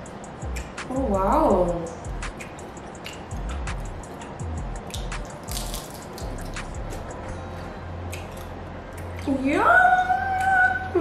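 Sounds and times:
crunchy chewing: 4.1s - 9.3s.

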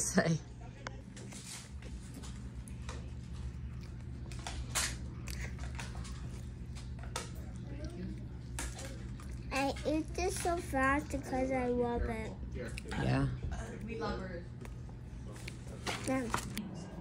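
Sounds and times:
low room hum: 0.0s - 17.0s
child chewing: 1.4s - 13.3s
child talking: 9.4s - 12.4s, 16.0s - 16.6s.

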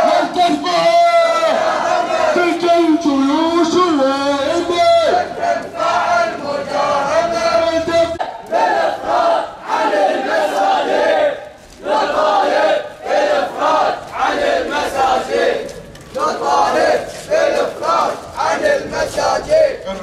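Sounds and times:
crowd chanting slogans: 0.0s - 20.0s.

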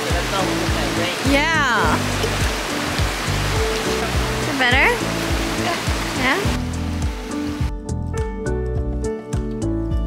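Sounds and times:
rushing creek water: 0.0s - 7.7s
background music: 0.0s - 10.0s.

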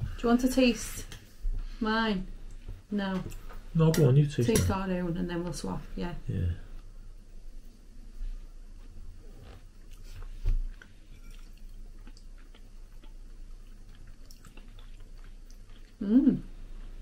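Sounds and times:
people chewing food: 8.4s - 17.0s.

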